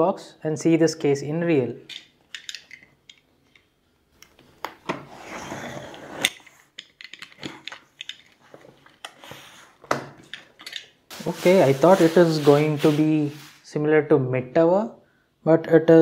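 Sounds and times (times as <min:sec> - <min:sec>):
cardboard being handled: 0:11.1 - 0:13.6.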